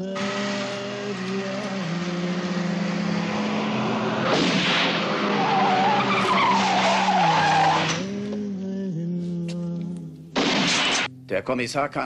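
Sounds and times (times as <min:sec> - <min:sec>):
wavering tyre squeal: 0:00.0 - 0:08.1
tyres skidding on dirt road: 0:00.0 - 0:08.2.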